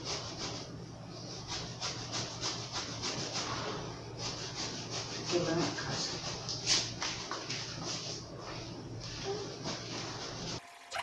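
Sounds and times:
knife sawing through foam: 4.2 - 6.4.

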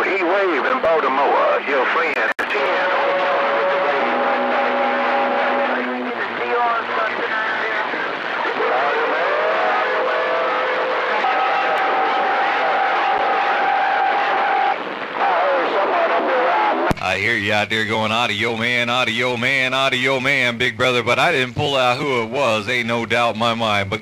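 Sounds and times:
garbled radio voices: 0.0 - 24.0
radio static hiss: 0.0 - 24.0.

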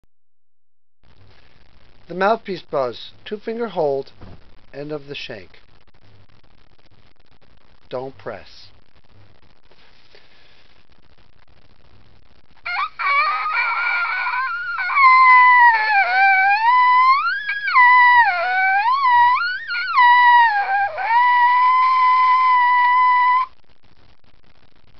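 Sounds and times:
trumpet mouthpiece buzzing: 12.6 - 23.5.

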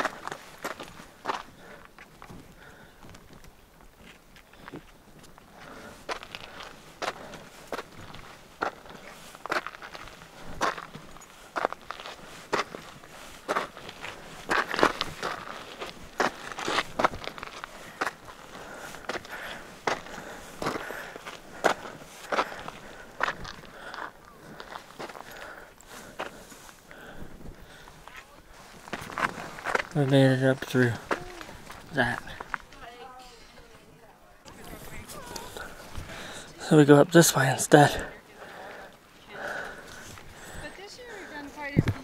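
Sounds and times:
footsteps crunching on stony trail: 0.0 - 33.8, 34.4 - 42.0.

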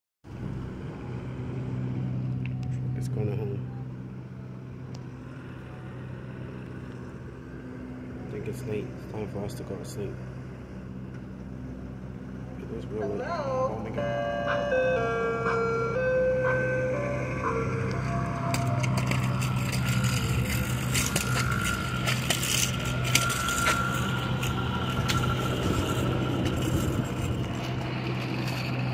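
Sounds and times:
vehicle engine idling: 0.3 - 28.9
ice cream truck chime melody: 13.7 - 28.9.

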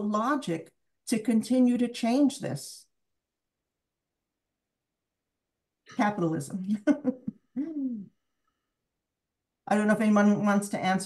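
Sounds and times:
person laughing: 6.7 - 8.1
person humming: 7.5 - 8.1.

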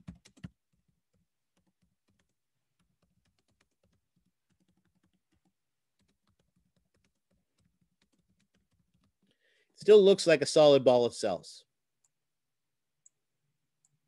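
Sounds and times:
typing on keyboard: 0.0 - 9.3.

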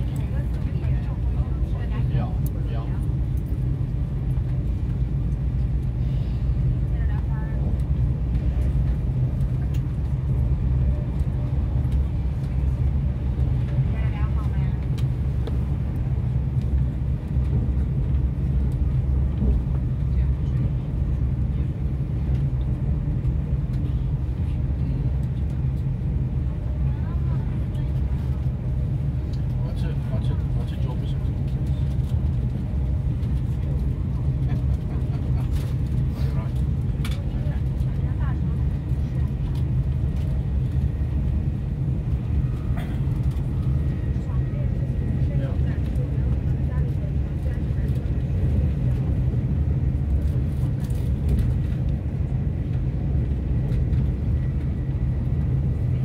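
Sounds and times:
vehicle rumble from inside: 0.0 - 56.0.

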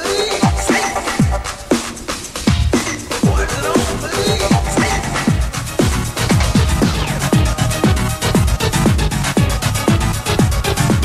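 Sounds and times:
electronic dance music: 0.0 - 11.0
fast hi-hats: 0.0 - 11.0.

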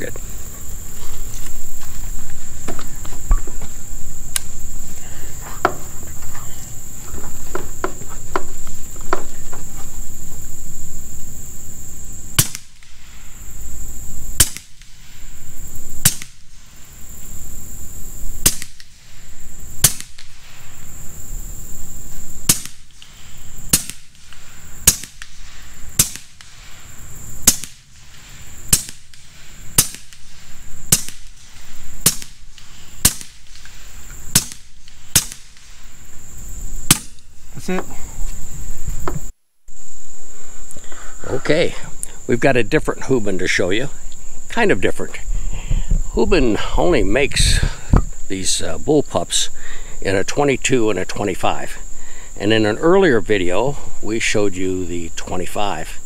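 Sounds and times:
high insect drone: 0.0 - 56.0
air rifle shots: 12.3 - 13.2, 14.3 - 15.2, 16.0 - 16.6, 18.4 - 19.1, 19.8 - 20.6, 22.4 - 26.8, 27.4 - 35.8, 36.8 - 37.4.

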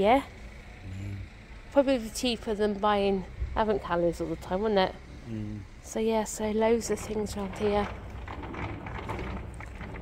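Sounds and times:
low steady rumble: 0.0 - 10.0
shop background noise: 0.0 - 10.0.

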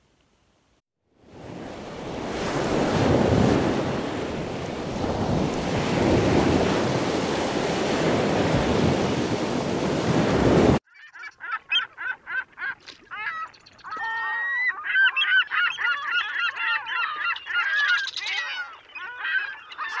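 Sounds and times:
flock of birds calling: 13.2 - 20.0.

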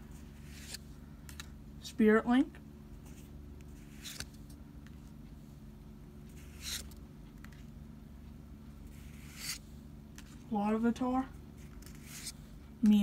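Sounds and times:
low background hum: 0.0 - 13.0
cards swishing: 0.2 - 1.5, 3.0 - 4.6, 6.3 - 7.0, 8.9 - 10.4, 11.6 - 12.5.

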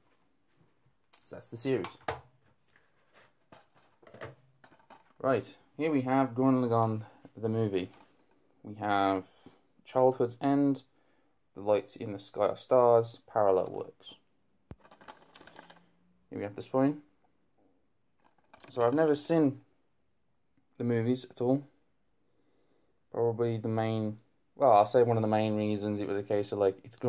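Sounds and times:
plastic cases being handled: 0.1 - 5.5, 7.0 - 8.4, 14.7 - 16.0, 18.1 - 19.2.

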